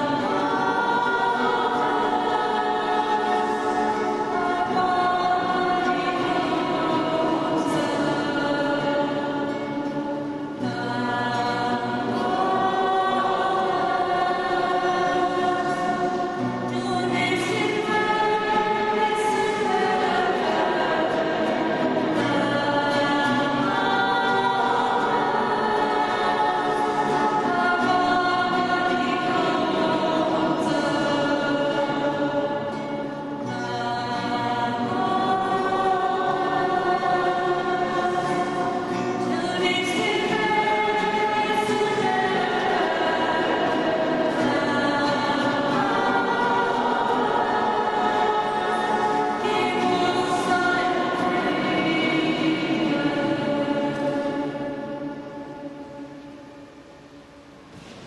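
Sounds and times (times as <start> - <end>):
women singing a worship song: 0.0 - 55.9
strummed acoustic guitar: 0.0 - 58.0.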